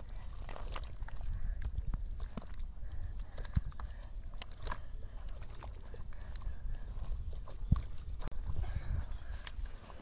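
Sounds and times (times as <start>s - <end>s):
hands squelching in wet mud: 0.0s - 10.0s.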